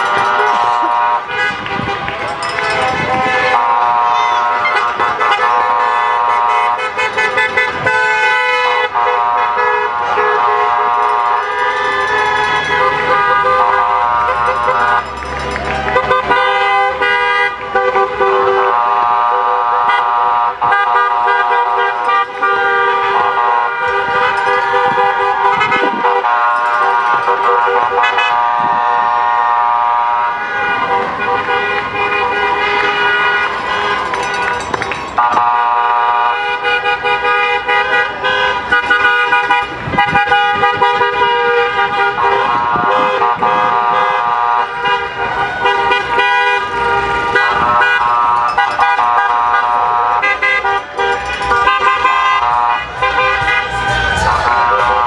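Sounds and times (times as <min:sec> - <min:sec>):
voices shouting: 0:00.0 - 0:06.2, 0:11.0 - 0:18.0, 0:22.1 - 0:28.2, 0:50.2 - 0:55.0
car horns honking: 0:00.0 - 0:55.0.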